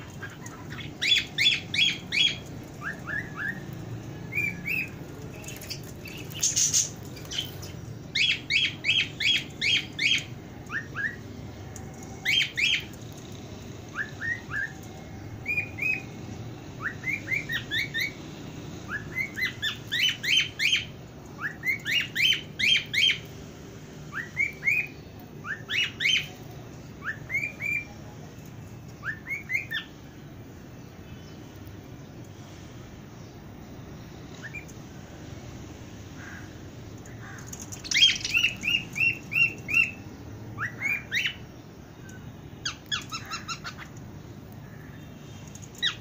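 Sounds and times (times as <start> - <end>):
parakeets chirping: 0.0 - 23.4, 24.1 - 32.0, 33.1 - 46.0.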